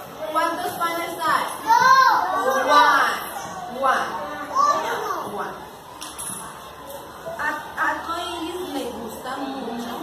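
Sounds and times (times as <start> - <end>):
young children talking and calling: 0.0 - 10.0.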